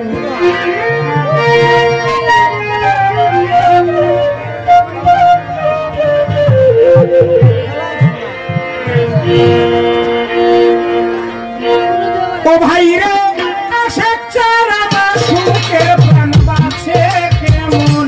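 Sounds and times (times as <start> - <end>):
band accompaniment: 0.0 - 18.0
violin playing folk melody: 0.0 - 18.0.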